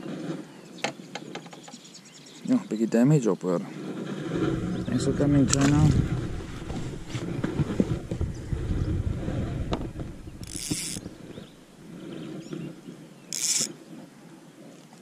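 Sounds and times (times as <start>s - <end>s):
fishing reel whirring and clicking: 10.4s - 11.2s, 13.3s - 13.8s.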